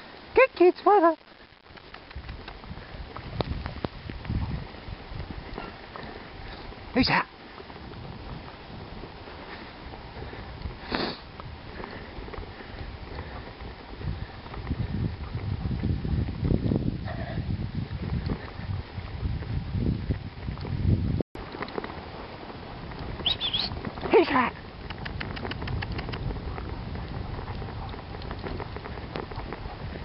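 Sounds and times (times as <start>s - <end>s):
paws on snow: 1.4s - 30.0s
rumble of sled rig: 1.4s - 30.0s.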